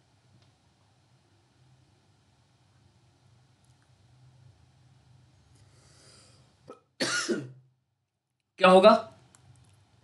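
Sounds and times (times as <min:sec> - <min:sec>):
soft breath: 0:05.4 - 0:06.6.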